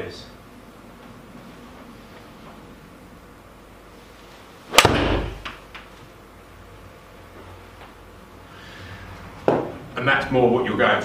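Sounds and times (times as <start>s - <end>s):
golf club striking ball: 4.7s - 5.6s.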